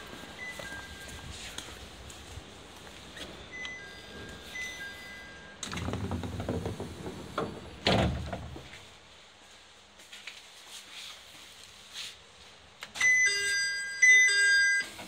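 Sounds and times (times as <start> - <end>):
two-tone electronic chime: 3.5 - 5.6, 13.0 - 15.0.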